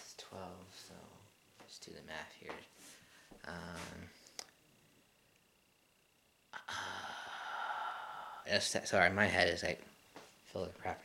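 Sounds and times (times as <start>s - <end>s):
man sighing: 6.6s - 8.5s.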